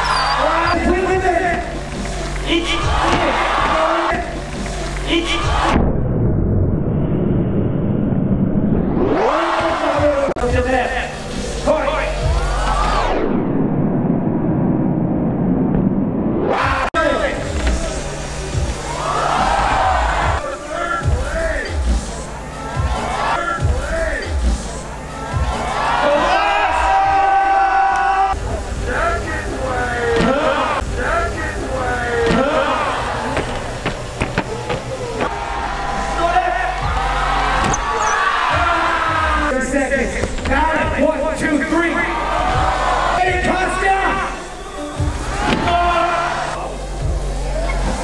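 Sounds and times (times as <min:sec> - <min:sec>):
crowd voices: 0:00.0 - 0:05.8, 0:16.6 - 0:48.0.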